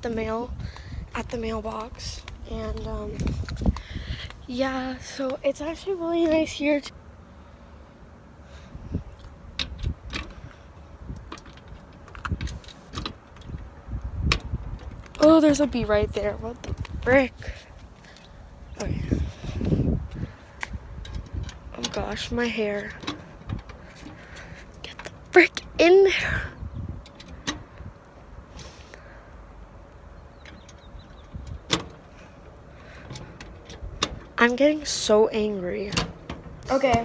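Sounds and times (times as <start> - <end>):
wind rumble on microphone: 0.0 - 6.7, 8.5 - 28.5, 30.1 - 37.0.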